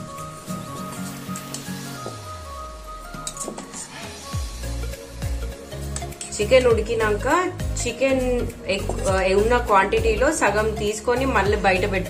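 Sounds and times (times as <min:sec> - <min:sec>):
background music with sliding bass: 0:00.0 - 0:12.0.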